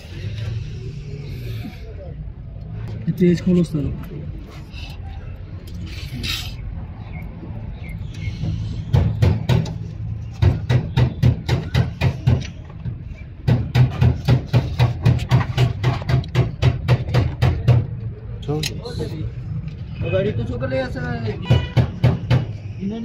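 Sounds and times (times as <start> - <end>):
rapid regular knocking: 10.4 - 18.0.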